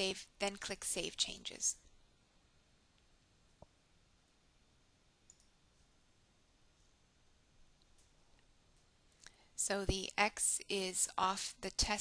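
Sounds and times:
computer mouse click: 0:05.3 - 0:05.6.

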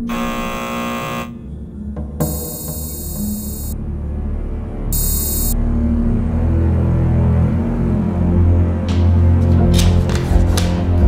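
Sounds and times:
harsh electronic alarm buzzer: 0:00.0 - 0:01.5, 0:02.2 - 0:03.8, 0:05.0 - 0:05.6
low steady drone: 0:00.0 - 0:08.8.

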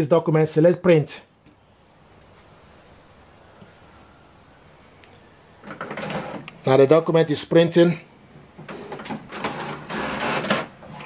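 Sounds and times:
inkjet printer feeding a page: 0:08.6 - 0:11.0.

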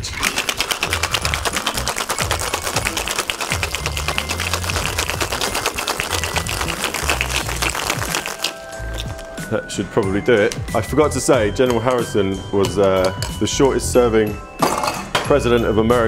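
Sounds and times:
ice rattling in cocktail shaker: 0:00.0 - 0:09.4.

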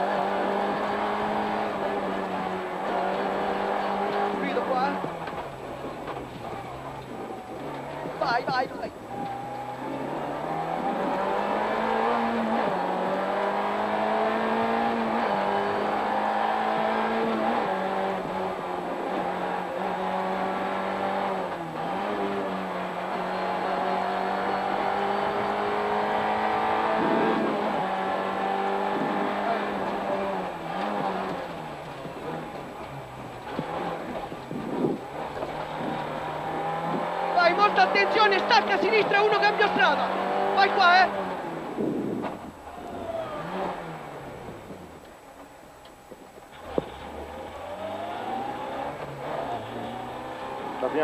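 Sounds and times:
rally car engine revving: 0:00.0 - 0:51.0.

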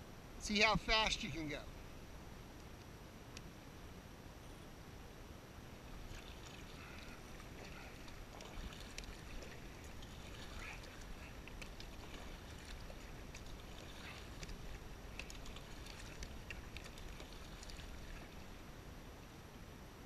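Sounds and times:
low steady rumble: 0:00.0 - 0:20.0
paddle strokes through water: 0:05.7 - 0:19.0
splashes and drips: 0:05.8 - 0:18.7.

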